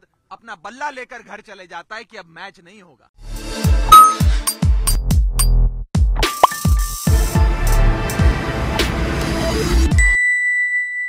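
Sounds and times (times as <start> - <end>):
bright ding ringing: 3.9 - 4.3.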